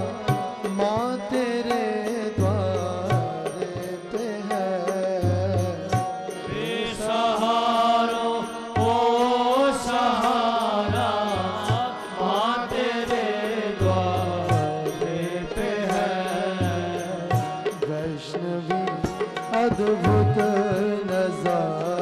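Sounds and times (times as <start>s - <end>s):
devotional singing over music: 0.0s - 22.0s.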